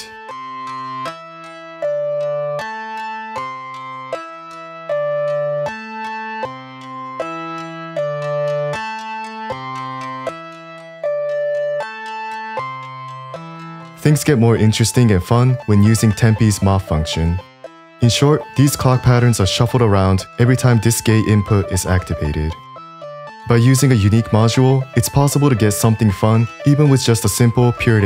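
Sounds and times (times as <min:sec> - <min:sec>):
plucked synth melody: 0:00.3 - 0:28.0.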